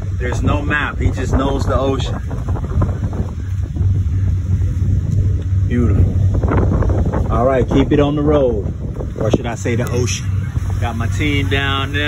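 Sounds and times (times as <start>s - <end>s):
boat engine humming: 0.0s - 12.0s
wind buffeting microphone: 0.0s - 12.0s.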